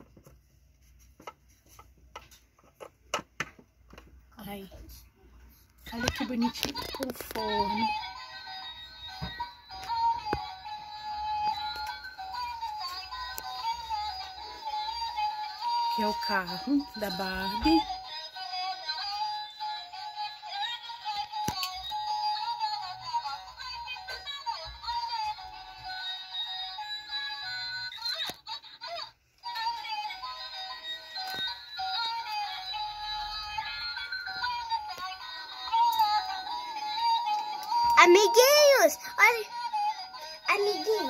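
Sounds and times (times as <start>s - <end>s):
synthetic sung melody music: 6.0s - 28.8s, 29.4s - 41.0s.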